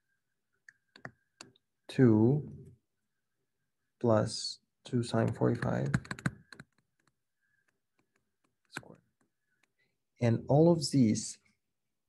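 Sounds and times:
stylus tapping on tablet screen: 0.7s - 1.5s, 5.2s - 9.8s
person speaking: 4.0s - 6.3s.

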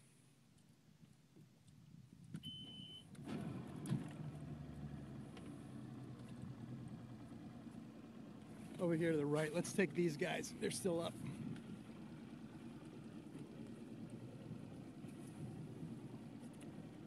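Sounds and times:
short steady beep: 2.4s - 3.1s
outboard motor running: 3.2s - 17.0s.

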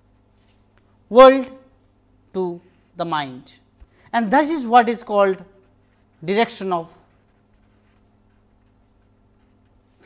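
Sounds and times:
marker pen scratching on paper: 5.5s - 10.0s.

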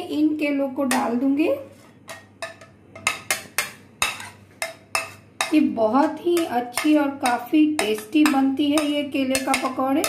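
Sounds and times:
spoon scraping a plate: 1.7s - 5.6s
spoon clinking on plate and bowl: 6.4s - 10.0s.

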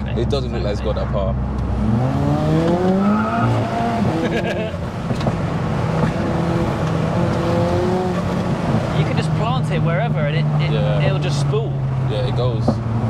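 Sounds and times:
car engine accelerating: 0.0s - 13.0s.

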